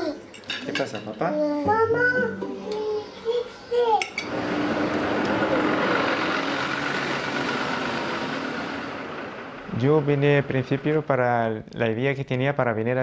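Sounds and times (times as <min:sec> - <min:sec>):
street noise: 0:04.3 - 0:11.1
bus engine running: 0:04.3 - 0:11.2.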